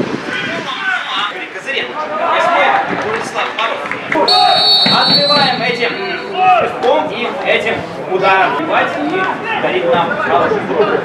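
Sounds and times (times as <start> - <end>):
voices: 0.2 - 11.0
referee's whistle blast: 4.3 - 6.3.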